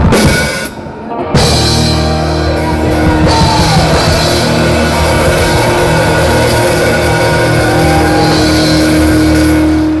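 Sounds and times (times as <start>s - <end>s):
bass guitar: 0.0s - 10.0s
drums and cymbals: 0.0s - 10.0s
electric guitar: 0.0s - 10.0s.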